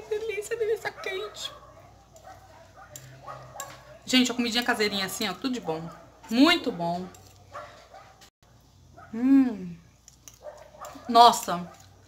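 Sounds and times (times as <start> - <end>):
fork clicking on ceramic plate: 2.9 - 3.9.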